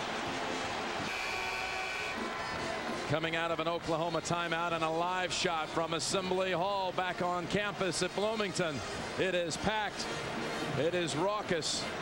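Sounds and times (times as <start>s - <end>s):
arena crowd roaring: 0.0s - 12.0s.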